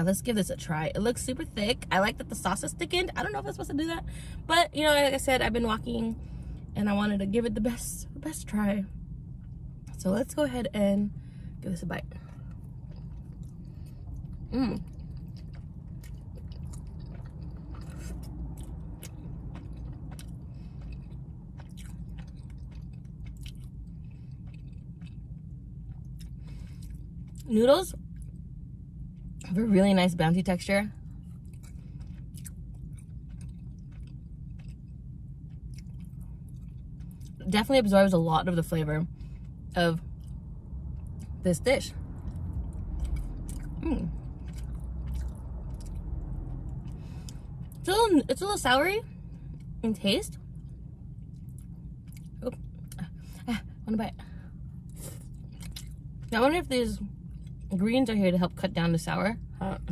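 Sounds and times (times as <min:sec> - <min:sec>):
steady low hum: 0:00.0 - 0:59.9
person chewing noodles: 0:12.3 - 0:27.4, 0:31.2 - 0:37.4, 0:42.2 - 0:47.8, 0:50.6 - 0:53.0, 0:54.8 - 0:56.3.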